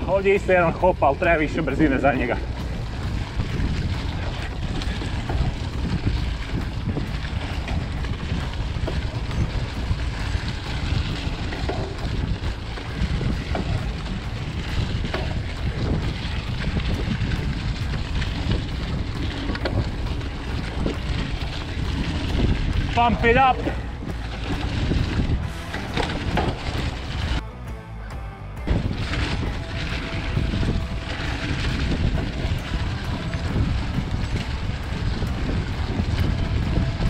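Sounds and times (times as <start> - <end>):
bike clicks and rattles: 0.0 - 27.4, 28.6 - 37.0
tyres rolling over dry leaves: 0.0 - 27.4, 28.7 - 37.0
wind on microphone: 0.0 - 27.4, 28.6 - 37.0.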